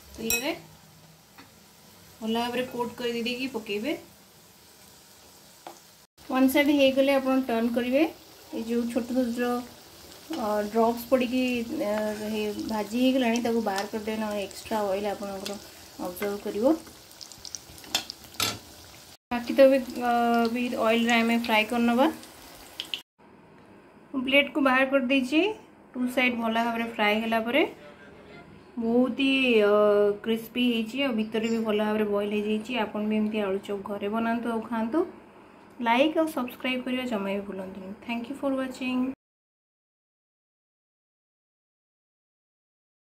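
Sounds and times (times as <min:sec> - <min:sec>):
food sizzling in hot oil: 0:00.0 - 0:23.1.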